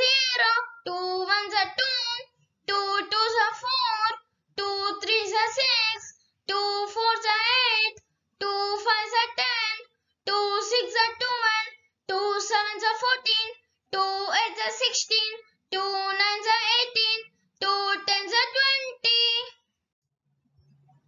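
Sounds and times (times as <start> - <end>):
child chanting: 0.0 - 19.6.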